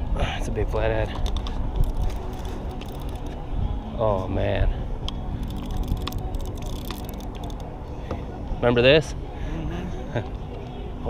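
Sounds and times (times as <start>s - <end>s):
fishing reel clicks: 1.8s - 3.3s, 5.4s - 7.7s.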